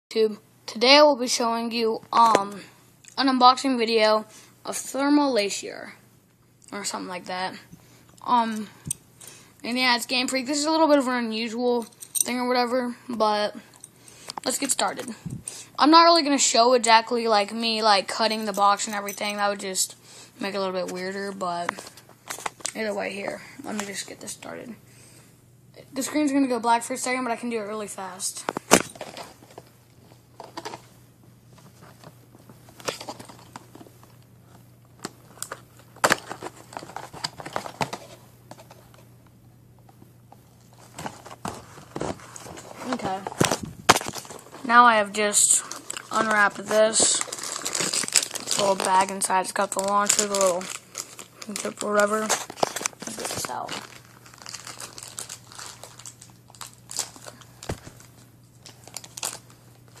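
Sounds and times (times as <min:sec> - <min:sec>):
plastic packaging crinkling and tearing: 0:40.6 - 0:44.8, 0:45.4 - 1:00.0.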